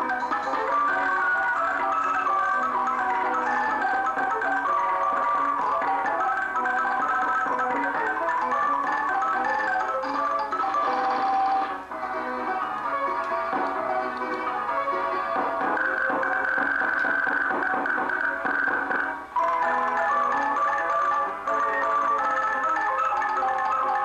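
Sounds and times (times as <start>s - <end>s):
orchestrion playing a tune: 0.0s - 24.0s.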